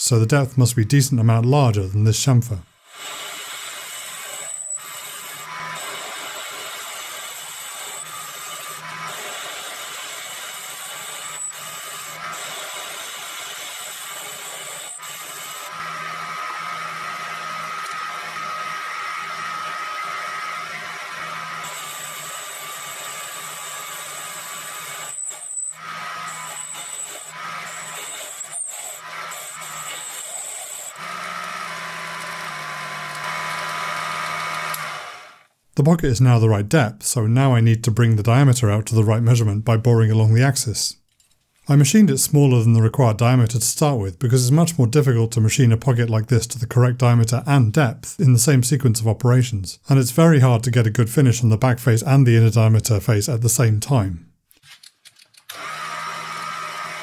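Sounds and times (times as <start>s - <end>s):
lathe motor whine: 2.8s - 35.5s, 55.5s - 57.0s
metal cutting noise: 2.8s - 35.5s, 55.5s - 57.0s.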